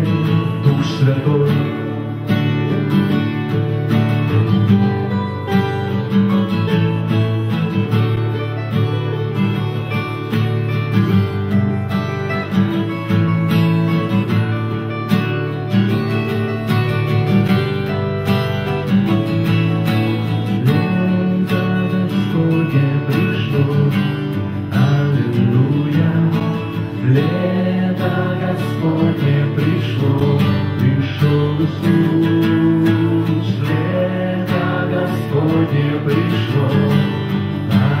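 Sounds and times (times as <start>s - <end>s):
acoustic guitars strumming: 0.0s - 38.0s.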